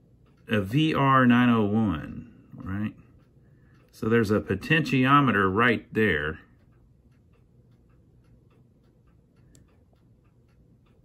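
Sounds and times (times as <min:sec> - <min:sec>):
faint even ticking: 0:00.0 - 0:11.0.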